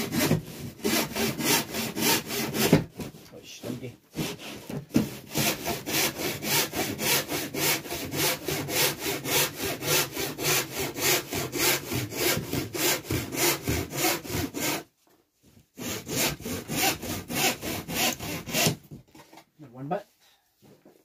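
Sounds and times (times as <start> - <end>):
hand saw cutting through wood: 0.0 - 14.9, 15.8 - 18.9.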